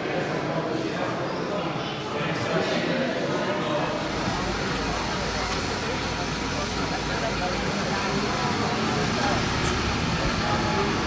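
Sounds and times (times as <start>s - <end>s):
crowd chatter: 0.0s - 11.0s
rail vehicle engine rumble: 4.1s - 11.0s.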